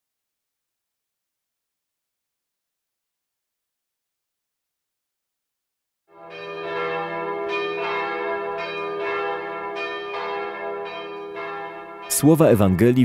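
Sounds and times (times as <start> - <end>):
bell-like chime tones: 9.8 - 12.8.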